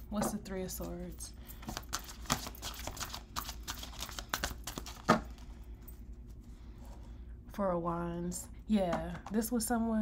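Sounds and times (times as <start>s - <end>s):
cards being shuffled: 1.6s - 5.5s.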